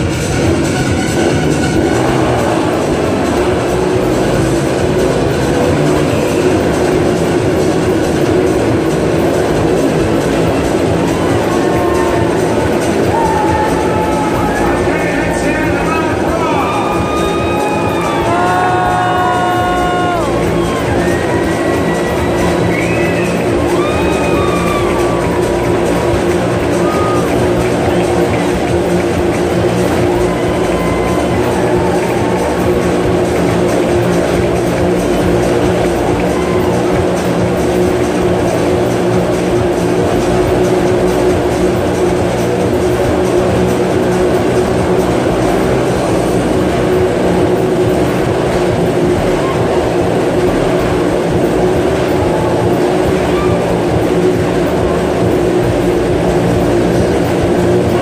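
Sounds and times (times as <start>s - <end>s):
loud circus music: 0.0s - 58.0s
motorcycle engines running: 0.0s - 58.0s.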